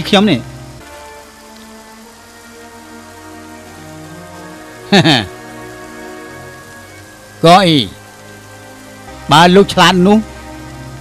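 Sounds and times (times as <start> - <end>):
soft background music: 0.0 - 11.0
steady hiss: 0.0 - 11.0.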